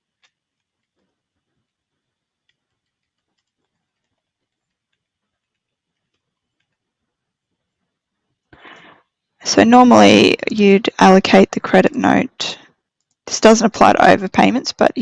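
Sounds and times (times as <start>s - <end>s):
computer keyboard typing: 0.0s - 6.9s.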